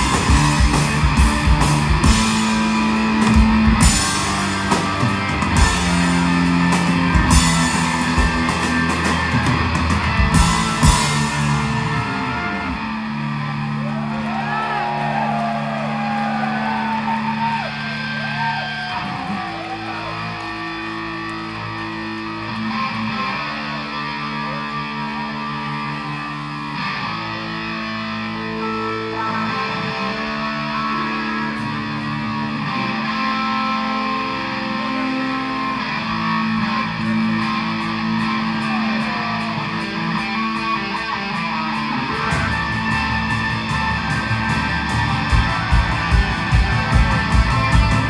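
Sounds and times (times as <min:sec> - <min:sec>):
electric guitar bending notes: 0:00.0 - 0:48.0.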